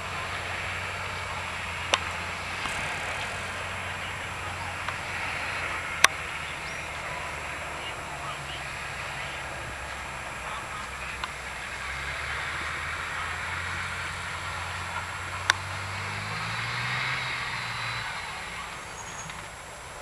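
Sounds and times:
fire truck engine running: 0.0s - 20.0s
steady rushing noise: 0.0s - 20.0s.

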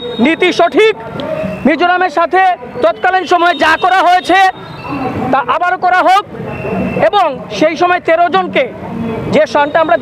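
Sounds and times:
street traffic hum: 0.0s - 10.0s
man speaking: 0.1s - 1.0s, 1.6s - 6.3s, 7.0s - 10.0s.

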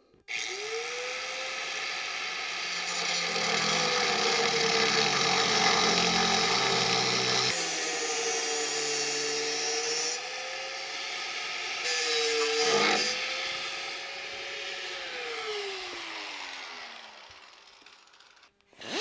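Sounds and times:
angle grinder cutting metal: 0.3s - 19.0s.

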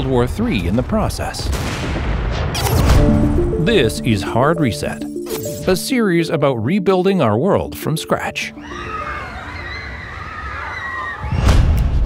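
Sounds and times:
riders screaming: 8.7s - 11.4s.

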